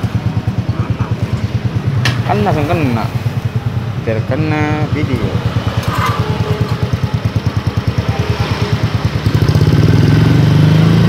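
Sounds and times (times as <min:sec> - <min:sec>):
motorcycle engine idling: 0:00.0 - 0:10.2.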